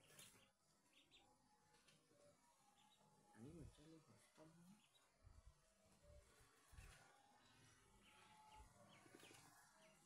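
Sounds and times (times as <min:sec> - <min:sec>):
ducklings peeping: 0:00.0 - 0:01.3.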